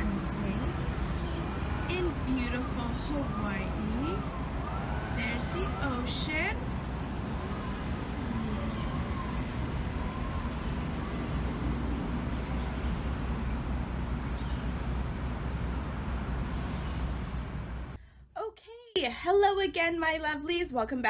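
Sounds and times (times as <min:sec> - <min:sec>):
road traffic rumble: 0:00.0 - 0:18.0.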